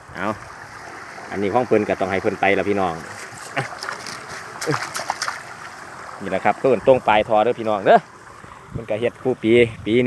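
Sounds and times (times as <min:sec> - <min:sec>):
water rushing and splashing: 0:00.0 - 0:10.0
net handled in water: 0:03.0 - 0:05.8.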